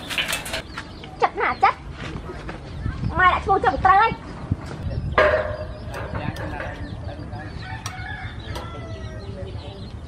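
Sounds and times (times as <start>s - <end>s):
chickens clucking: 4.4s - 10.0s
rooster crowing: 7.6s - 9.2s.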